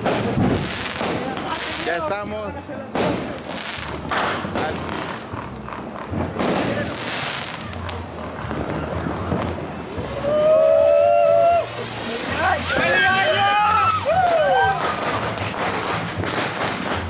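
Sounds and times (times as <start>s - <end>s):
firework bursts: 0.0s - 2.1s, 2.8s - 17.0s
fountain fireworks hissing: 0.0s - 17.0s.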